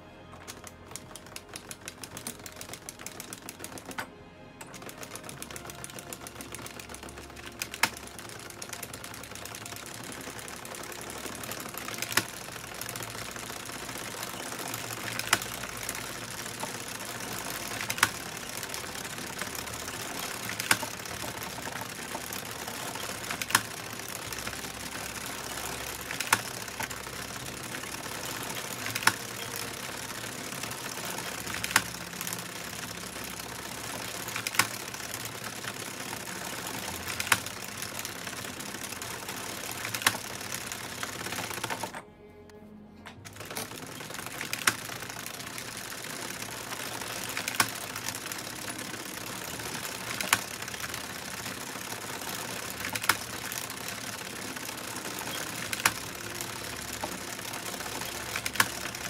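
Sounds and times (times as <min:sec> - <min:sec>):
knitting machine clatter: 0:00.0 - 0:42.1, 0:43.2 - 0:59.0.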